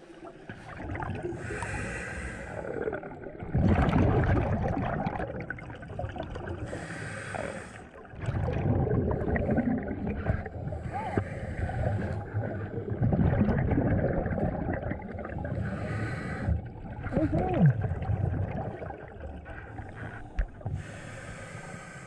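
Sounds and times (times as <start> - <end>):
gurgling exhaled bubbles: 0.0 - 21.2
regulator hissing inhale: 1.4 - 2.9, 6.6 - 8.0, 15.6 - 16.7, 20.0 - 22.0.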